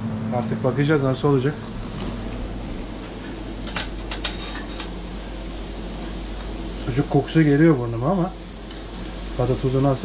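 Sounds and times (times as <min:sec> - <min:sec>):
extractor fan hum: 0:00.0 - 0:10.0
meat sizzling on a griddle: 0:03.5 - 0:10.0.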